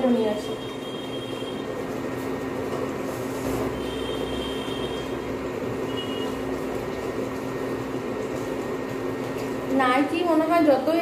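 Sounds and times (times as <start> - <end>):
thin steady whine: 3.3 - 6.5.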